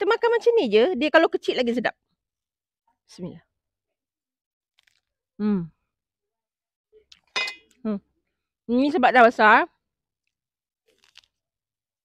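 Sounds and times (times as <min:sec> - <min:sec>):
knife clinking on metal tray: 0:07.4 - 0:07.7.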